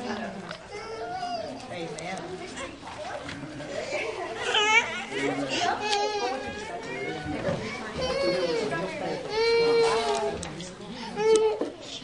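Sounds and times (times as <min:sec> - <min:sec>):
children chattering: 0:00.0 - 0:12.0.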